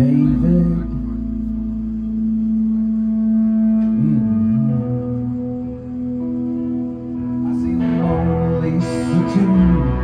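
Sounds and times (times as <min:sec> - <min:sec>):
live band holding a chord: 0:00.0 - 0:10.0.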